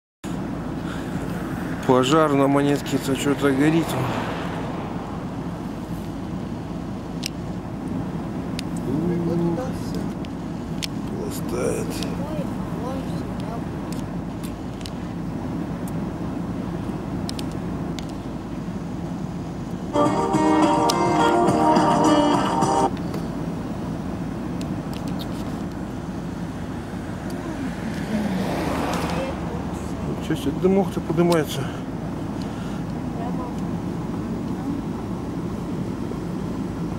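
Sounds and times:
distant traffic rumble: 0.2s - 36.9s.

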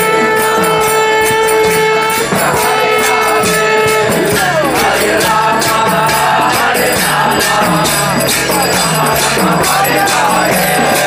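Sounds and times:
hand cymbals clashing: 0.0s - 11.0s
group of voices chanting: 2.2s - 11.0s.

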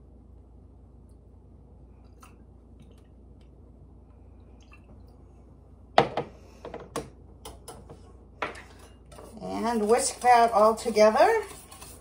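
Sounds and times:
liquid dripping: 1.0s - 5.5s.

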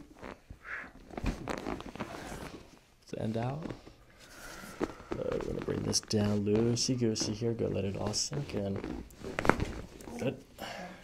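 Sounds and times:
spine cracking: 0.0s - 2.7s, 3.4s - 10.4s
clothing rustling: 0.0s - 10.5s
padded table creaking: 1.1s - 2.7s, 3.4s - 10.2s.

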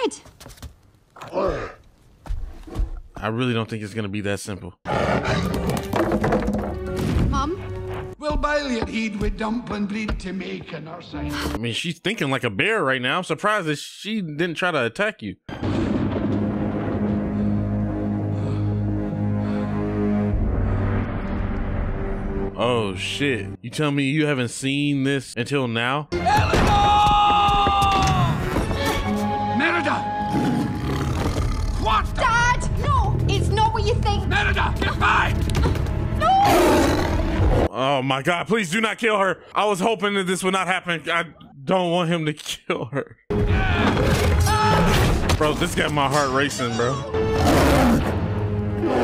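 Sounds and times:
bear growling: 4.9s - 6.0s, 30.3s - 32.0s, 36.4s - 37.7s, 47.2s - 49.0s
background music: 5.2s - 11.6s, 15.6s - 23.6s, 26.1s - 37.6s, 43.3s - 49.0s.

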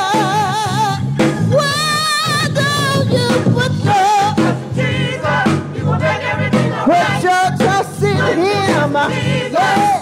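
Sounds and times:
instrumental accompaniment: 0.0s - 10.0s
lead voice singing with vibrato: 0.0s - 10.0s
church choir singing: 4.1s - 10.0s.

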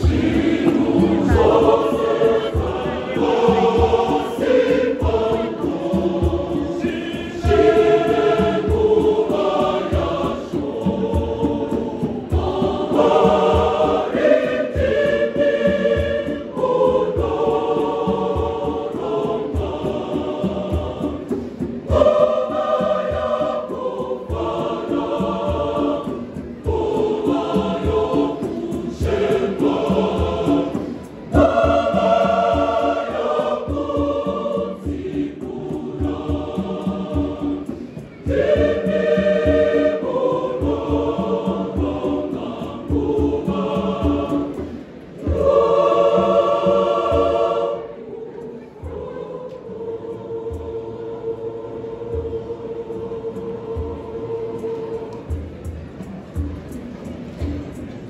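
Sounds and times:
conga drums beating: 0.0s - 47.6s
mixed choir singing gospel: 0.0s - 58.0s.

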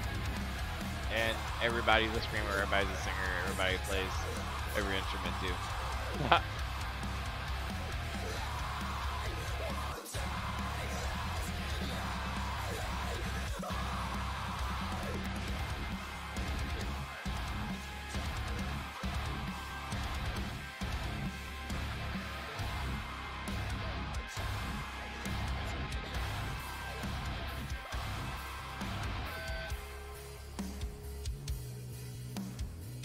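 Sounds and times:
heavy rock song: 0.0s - 33.0s.

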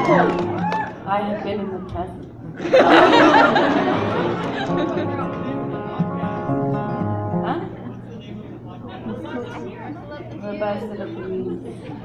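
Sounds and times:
acoustic guitar notes ringing: 3.9s - 9.4s.

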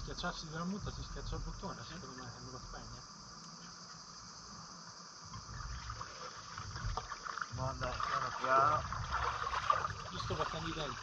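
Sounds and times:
insects droning: 0.0s - 11.0s
water swishing and lapping: 5.4s - 11.0s.

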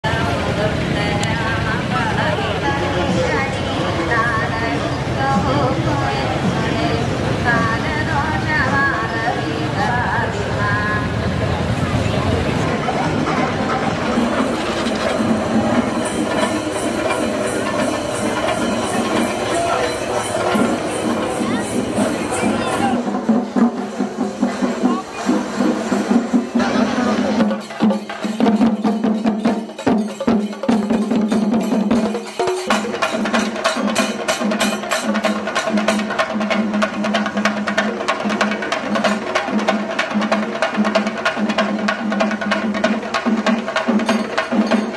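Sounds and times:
crowd noise: 0.0s - 44.9s
festival procession music: 0.0s - 44.9s
drums beaten with sticks: 0.1s - 44.9s
small hand cymbals clashing: 13.7s - 44.9s.

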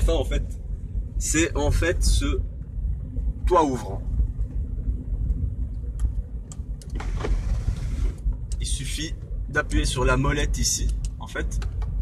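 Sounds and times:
car cabin engine and road rumble: 0.0s - 12.0s.

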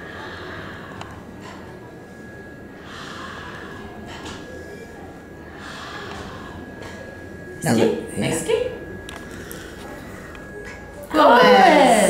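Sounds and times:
breathy puffs of air: 0.0s - 6.8s
faint high whine: 0.0s - 12.0s.

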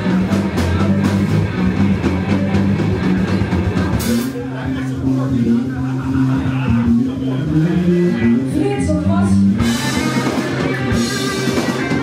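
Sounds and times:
driving drum beat: 0.0s - 12.0s
electric guitar and bass riff: 0.0s - 12.0s.

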